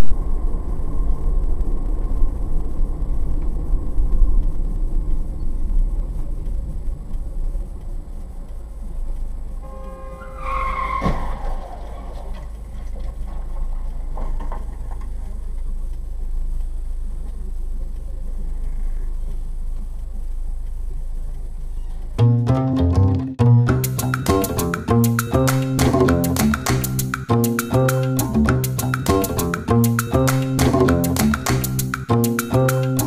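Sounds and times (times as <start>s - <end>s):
car rumbling on road: 0.0s - 33.0s
short horn-like squeal: 9.6s - 12.4s.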